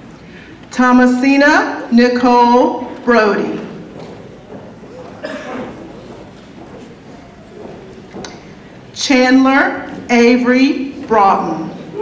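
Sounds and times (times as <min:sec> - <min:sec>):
footsteps on stage floor: 0:00.0 - 0:12.0.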